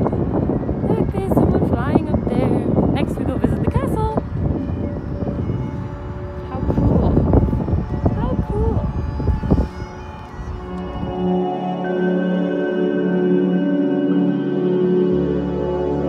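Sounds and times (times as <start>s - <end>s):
indistinct voices: 0.0s - 11.6s
wind buffeting microphone: 0.0s - 11.8s
background music sustained tones: 0.0s - 16.0s.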